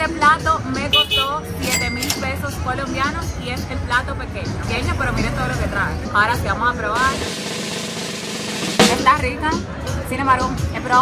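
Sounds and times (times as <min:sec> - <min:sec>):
snare drum roll: 0:07.0 - 0:09.1.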